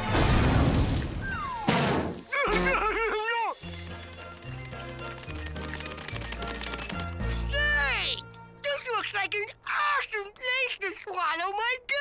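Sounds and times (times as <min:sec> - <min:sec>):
cartoon boy yelling: 0:02.4 - 0:03.6, 0:08.7 - 0:12.0.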